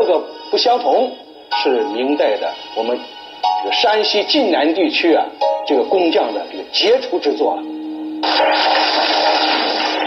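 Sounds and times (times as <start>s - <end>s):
audience applauding: 8.2s - 10.0s.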